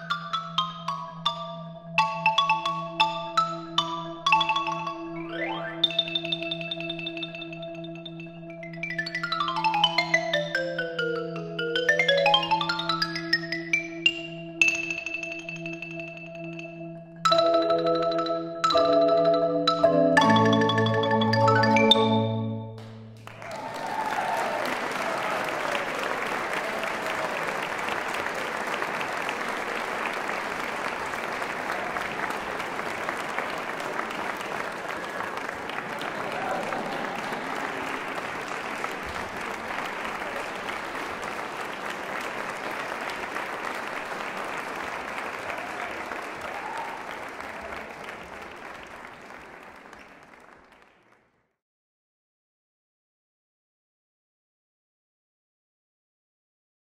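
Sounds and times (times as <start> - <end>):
crowd cheering: 22.8 - 51.1
audience applauding: 22.8 - 51.3.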